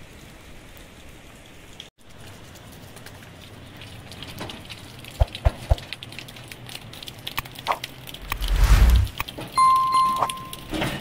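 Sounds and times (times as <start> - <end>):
rain: 0.0 - 11.0.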